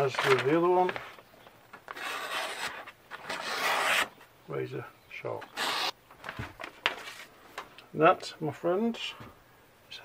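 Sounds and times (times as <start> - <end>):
paper rustling: 0.0 - 4.1, 5.4 - 7.7
chisel slicing through paper: 1.9 - 4.1, 5.5 - 6.0.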